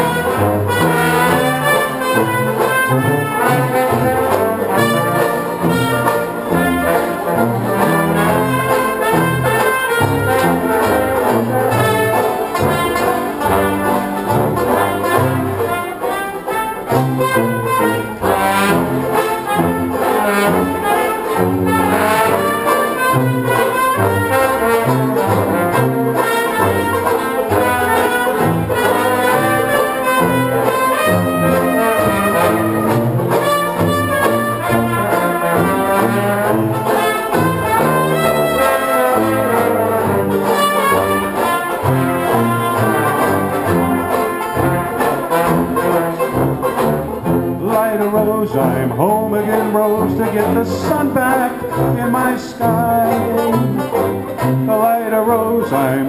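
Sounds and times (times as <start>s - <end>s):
bass line: 0.0s - 16.1s, 16.8s - 56.0s
banjos playing: 0.0s - 56.0s
brass: 0.0s - 56.0s.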